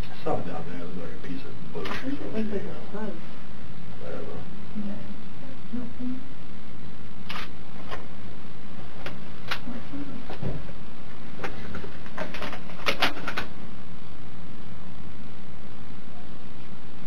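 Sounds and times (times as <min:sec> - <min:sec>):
room hum and hiss: 0:00.0 - 0:17.0.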